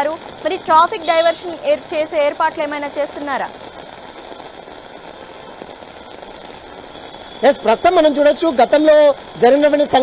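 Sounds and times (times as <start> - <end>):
heavy rain on a road: 0.0 - 10.0
traffic on wet road: 0.0 - 10.0.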